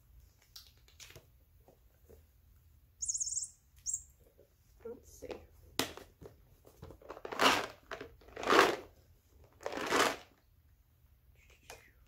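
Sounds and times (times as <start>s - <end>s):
bird-like chirping: 3.0s - 4.2s.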